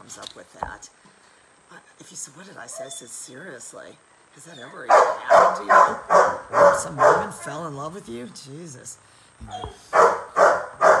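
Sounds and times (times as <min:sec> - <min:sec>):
dog barking: 0:04.9 - 0:07.6, 0:09.6 - 0:11.0.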